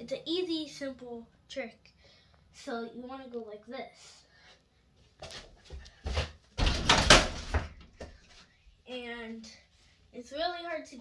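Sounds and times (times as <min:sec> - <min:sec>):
child's voice: 0:00.0 - 0:04.3, 0:08.9 - 0:11.0
ball crashing on rattling hoop: 0:06.6 - 0:07.8.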